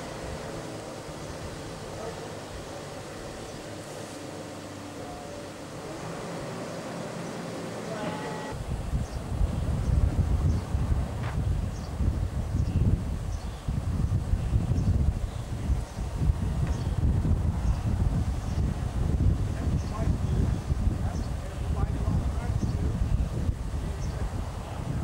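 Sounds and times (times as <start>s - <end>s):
wind buffeting microphone: 0.0s - 25.0s.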